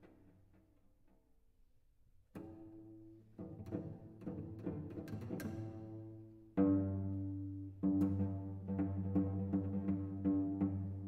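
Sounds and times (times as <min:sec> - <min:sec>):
solo cello: 0:02.3 - 0:11.0.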